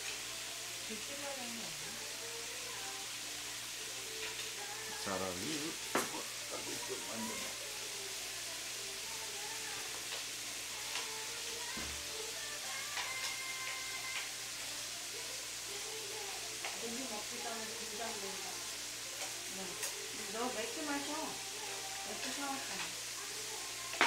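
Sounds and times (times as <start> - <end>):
pork sizzling in a pan: 0.0 - 24.0.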